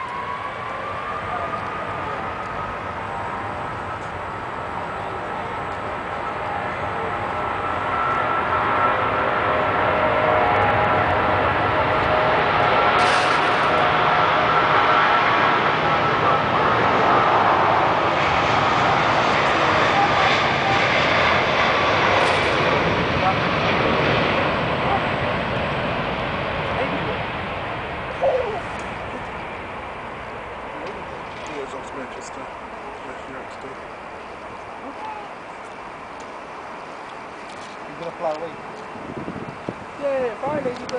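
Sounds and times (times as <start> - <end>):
high engine whine: 0.0 - 40.9
jet engines passing over: 0.0 - 40.9.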